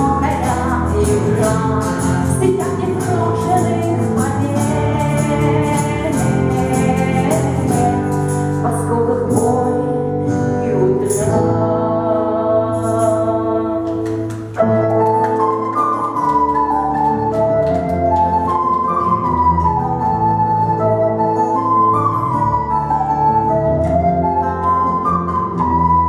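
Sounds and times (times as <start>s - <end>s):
acoustic guitar: 0.0s - 26.0s
bass guitar: 0.0s - 26.0s
wooden flute melody: 14.6s - 26.0s.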